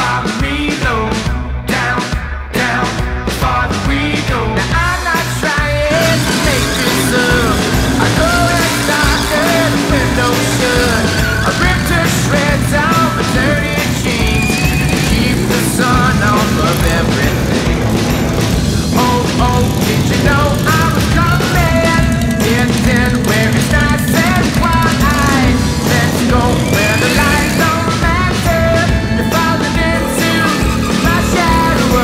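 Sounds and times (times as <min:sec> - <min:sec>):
rock music over loudspeakers: 0:00.0 - 0:32.0
motorcycle engine revving: 0:02.6 - 0:32.0.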